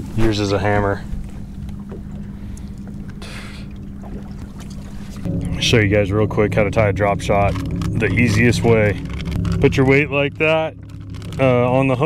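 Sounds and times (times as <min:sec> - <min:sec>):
boat motor humming: 0:00.0 - 0:12.0.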